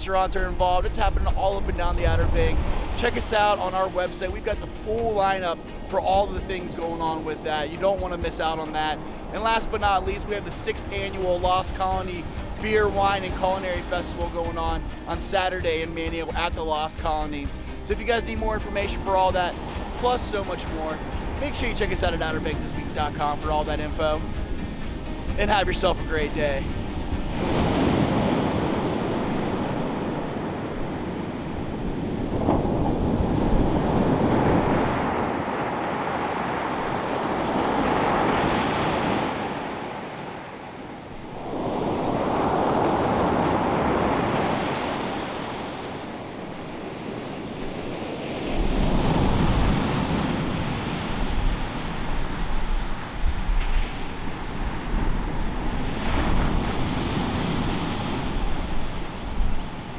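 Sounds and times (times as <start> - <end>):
wind buffeting microphone: 0.0 - 18.6, 19.2 - 59.9
ocean surf breaking on beach: 0.0 - 59.9.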